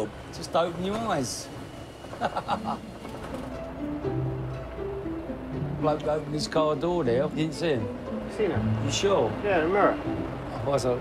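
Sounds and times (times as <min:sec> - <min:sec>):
background music: 0:00.0 - 0:11.0
man laughing: 0:02.1 - 0:03.0.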